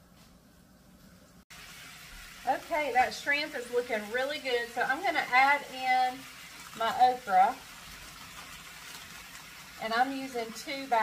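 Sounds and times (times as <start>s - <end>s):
shrimp sizzling in a skillet: 1.5s - 11.0s.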